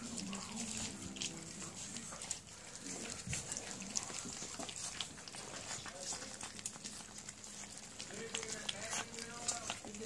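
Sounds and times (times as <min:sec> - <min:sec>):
dog eating from metal bowl: 0:00.0 - 0:10.0.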